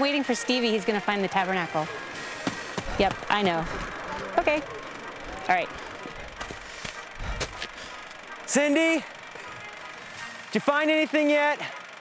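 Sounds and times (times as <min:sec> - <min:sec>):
footsteps running through dry grass: 0:06.2 - 0:08.2.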